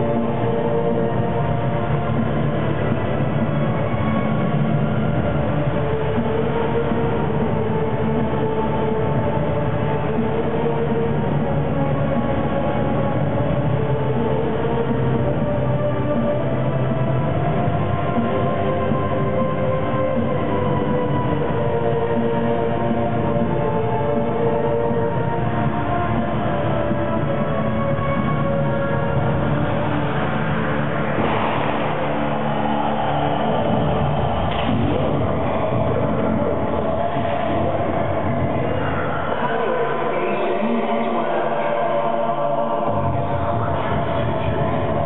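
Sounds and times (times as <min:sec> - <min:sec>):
droning soundscape over pa: 0:00.0 - 0:45.0.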